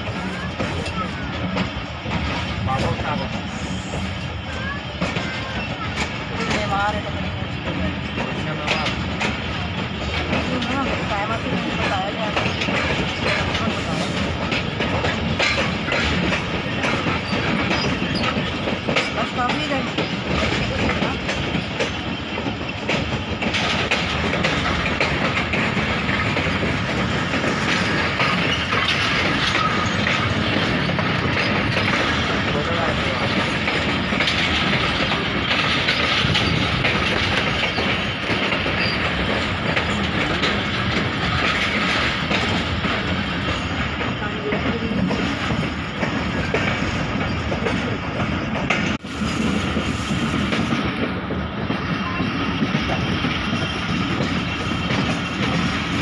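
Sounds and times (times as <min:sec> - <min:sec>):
train running noise: 0:00.0 - 0:56.0.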